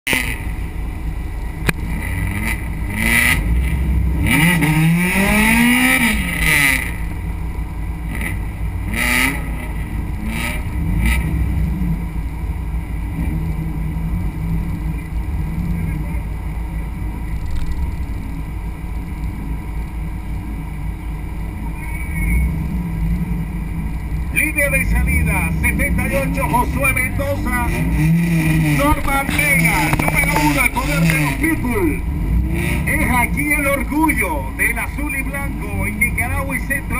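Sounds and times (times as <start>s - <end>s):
race car engine idling and revving: 0.0s - 36.9s.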